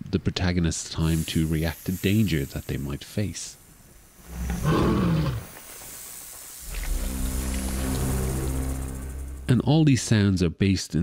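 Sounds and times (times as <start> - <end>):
huge creature growling: 4.3 - 5.4
low music drone: 6.6 - 10.2.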